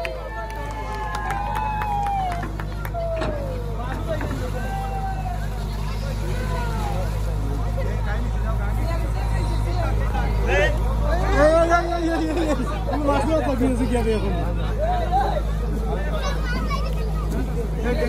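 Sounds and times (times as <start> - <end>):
crowd chatter: 0.0 - 18.0
diesel engine running: 0.0 - 18.0.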